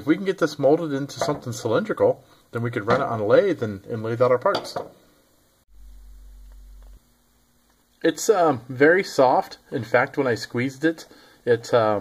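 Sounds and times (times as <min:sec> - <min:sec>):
low electrical mains hum: 0:00.0 - 0:12.0.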